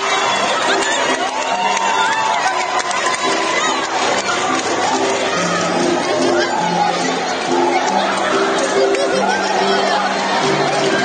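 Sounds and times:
crowd talking and shouting: 0.0 - 11.0
dance music: 0.0 - 11.0.

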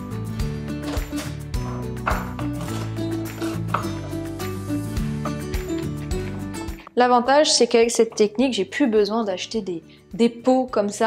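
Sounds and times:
background music with steady beat: 0.0 - 8.8.

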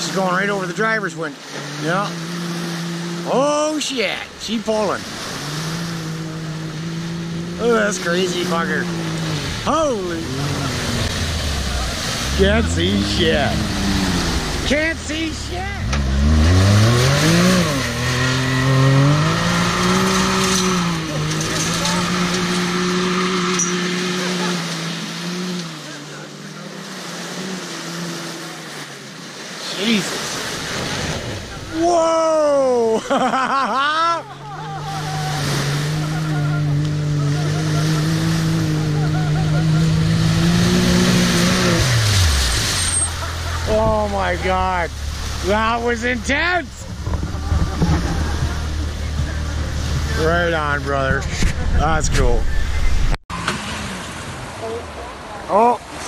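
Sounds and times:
rush of water spray: 0.0 - 33.0, 34.8 - 51.1, 53.3 - 56.0
engine revving hard: 1.6 - 28.8, 34.6 - 54.2.

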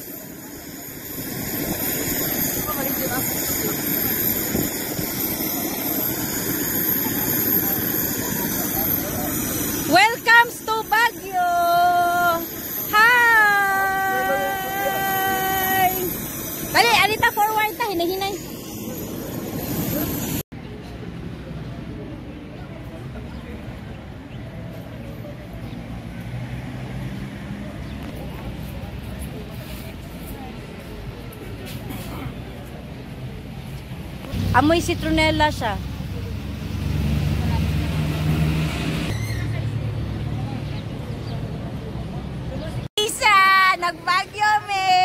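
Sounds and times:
jet engines running: 0.0 - 20.4
vehicle engine rumbling: 11.2 - 42.9.

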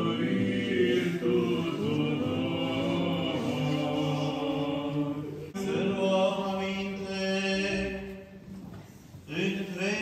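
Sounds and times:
voices singing liturgical chant: 0.0 - 8.2.

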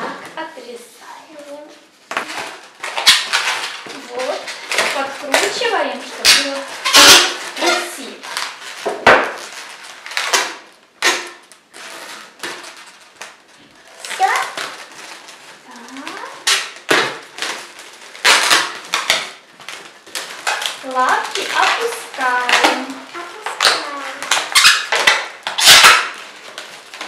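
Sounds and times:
balloons squeaking and rubbing: 1.3 - 27.0.

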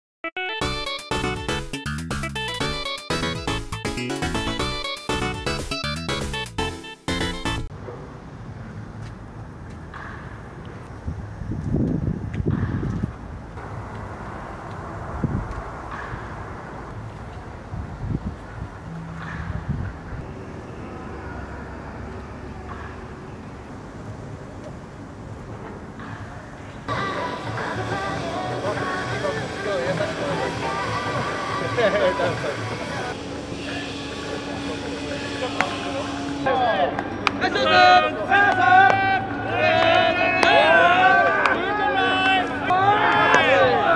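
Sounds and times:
outdoor ballpark noise: 7.7 - 43.9
voices: 19.2 - 43.9.

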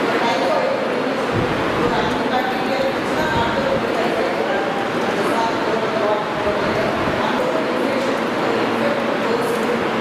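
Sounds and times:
woman speaking with echo: 0.0 - 10.0.

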